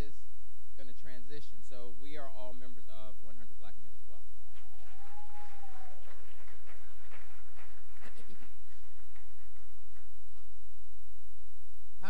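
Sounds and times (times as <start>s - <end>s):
steady low hum: 0.0s - 12.0s
scattered hand claps: 4.5s - 10.5s.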